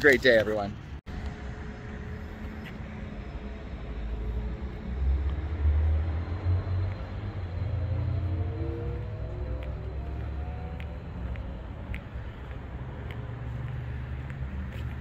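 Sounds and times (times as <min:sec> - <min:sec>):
passing car traffic: 0:00.0 - 0:15.0
vehicle engine accelerating: 0:01.1 - 0:15.0.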